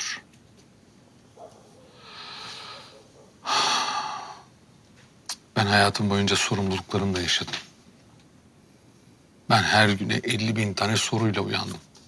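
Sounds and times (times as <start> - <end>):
person breathing heavily: 1.9 - 4.5.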